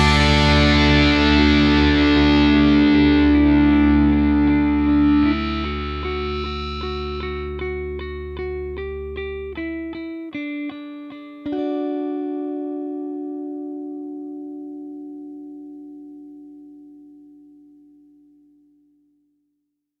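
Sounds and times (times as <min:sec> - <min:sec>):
electric guitar chords: 0:00.0 - 0:18.8.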